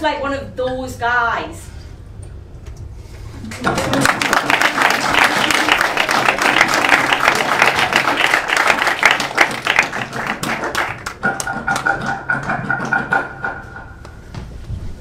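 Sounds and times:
audience applauding: 3.5s - 12.2s.

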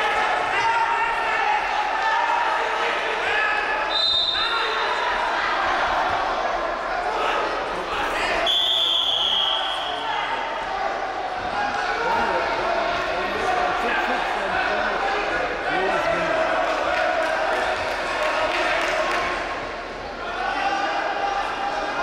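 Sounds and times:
crowd and coaches shouting: 0.0s - 22.0s
whistle blast: 3.9s - 4.5s, 8.4s - 10.0s.

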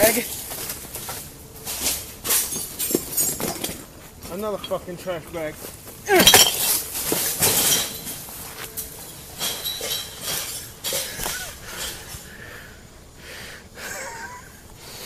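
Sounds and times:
trash bag crashing down: 6.1s - 8.4s
glass clinking: 6.2s - 8.2s, 8.8s - 11.2s.

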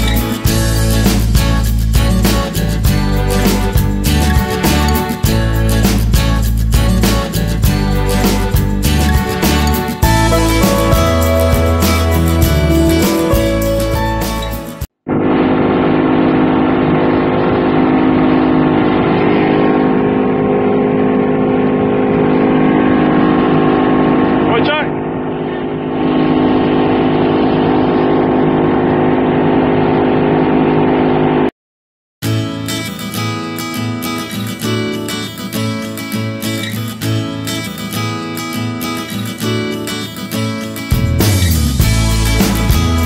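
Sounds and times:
strummed acoustic guitar: 0.0s - 29.7s, 32.2s - 43.0s
motorboat engine running: 15.0s - 31.5s.

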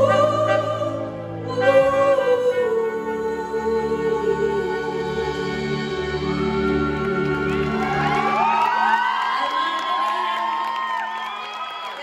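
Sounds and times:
audience cheering and whooping: 7.5s - 12.0s.

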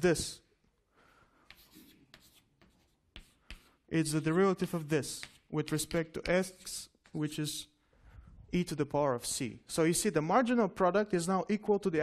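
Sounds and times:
faint scratchy writing strokes: 1.4s - 7.2s.

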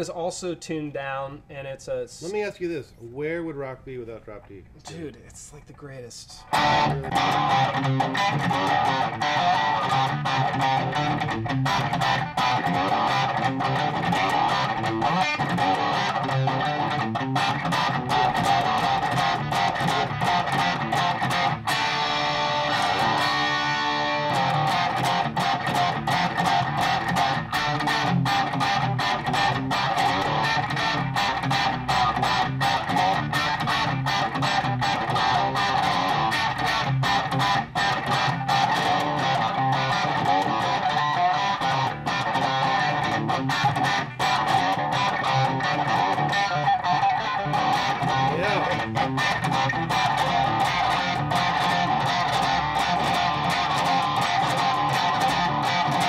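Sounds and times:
electric guitar riff: 6.4s - 56.0s.

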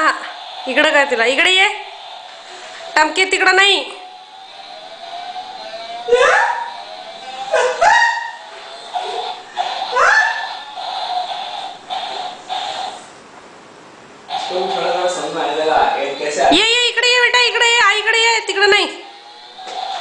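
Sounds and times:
electronic dog barks: 6.0s - 13.0s.

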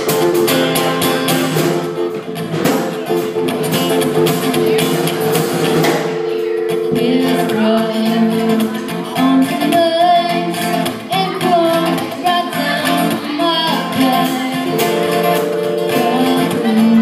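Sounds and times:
drums: 0.0s - 17.0s
guitar: 0.0s - 17.0s
keyboard: 0.0s - 17.0s
woman singing: 6.3s - 17.0s.

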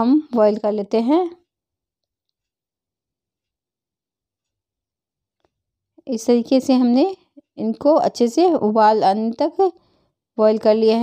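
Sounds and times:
woman speaking: 0.0s - 1.4s, 6.0s - 9.8s, 10.4s - 11.0s.

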